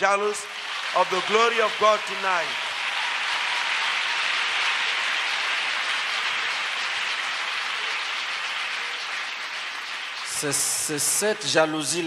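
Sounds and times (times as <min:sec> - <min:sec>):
congregation applauding: 0:00.0 - 0:12.0.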